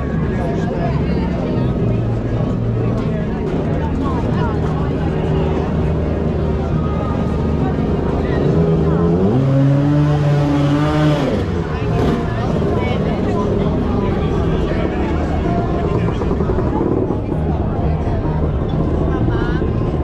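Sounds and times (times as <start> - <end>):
motor scooter engines: 0.0 - 20.0
voices: 0.0 - 20.0.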